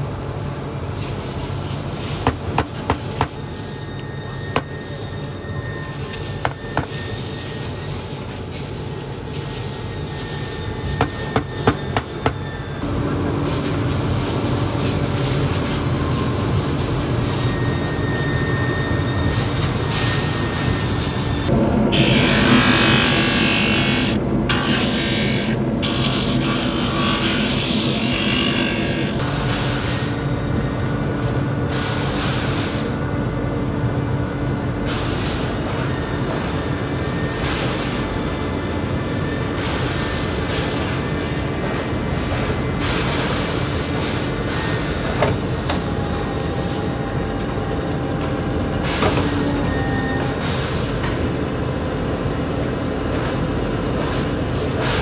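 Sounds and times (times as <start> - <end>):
workshop machine humming: 0.0 - 32.2, 32.8 - 53.8.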